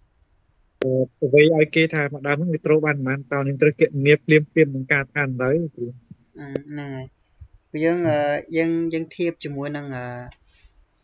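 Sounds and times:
man speaking over video call: 0.8 - 6.1
high-pitched chirring: 0.8 - 6.6.

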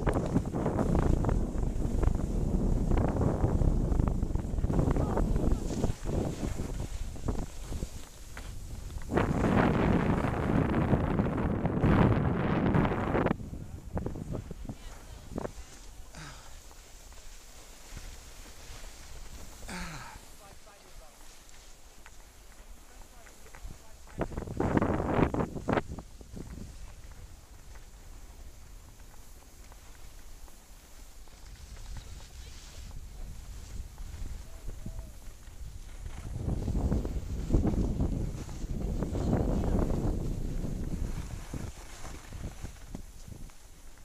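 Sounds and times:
wind rushing over microphone: 0.0 - 16.3, 23.6 - 29.6, 31.1 - 44.0
skis hissing on snow: 0.1 - 10.9, 12.9 - 44.0.

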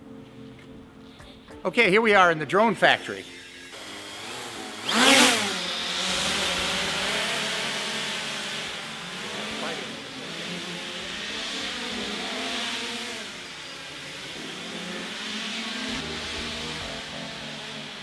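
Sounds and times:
quadcopter buzzing: 2.8 - 18.0.

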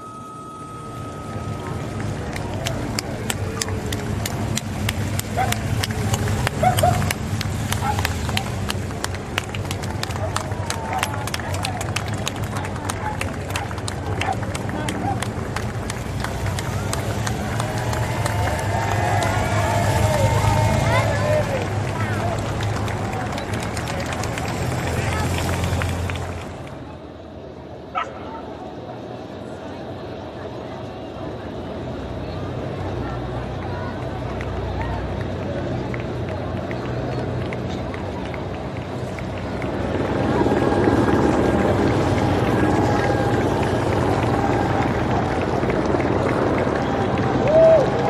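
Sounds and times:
voices calling out: 0.0 - 26.4
low engine rumble: 0.0 - 27.9, 29.0 - 48.0
crowd clapping: 1.0 - 26.9, 33.5 - 48.0.

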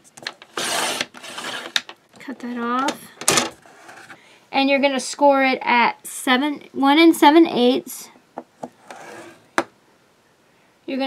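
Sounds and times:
paper trimmer blade scraping paper: 0.5 - 1.8, 8.8 - 9.4.

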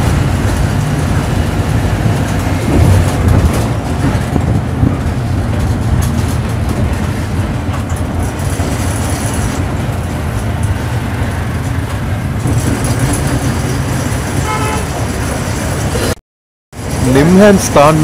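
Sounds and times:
bus engine and road noise: 0.0 - 18.0
vehicle horn toot: 14.4 - 15.0.

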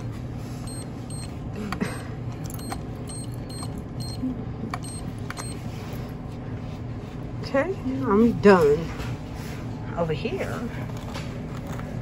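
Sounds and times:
low hum of store: 0.0 - 12.0.

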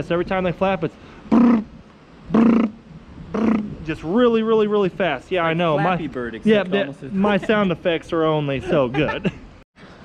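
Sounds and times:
man making brr mouth sounds: 1.3 - 3.8.

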